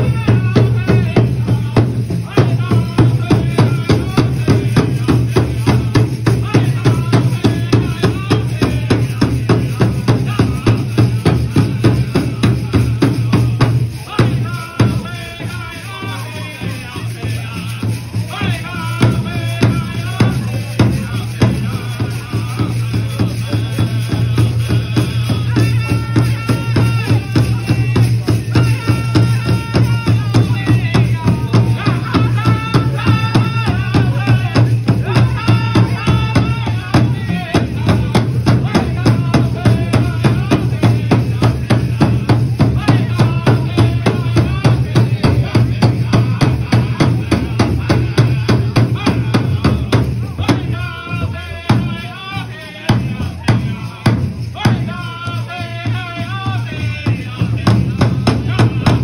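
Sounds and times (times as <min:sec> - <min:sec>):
big drum beats: 0:00.0 - 0:59.0
group singing: 0:00.0 - 0:59.0.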